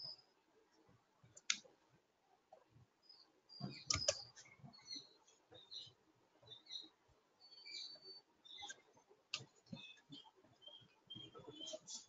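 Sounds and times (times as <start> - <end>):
faint high chirps: 3.0 - 12.0.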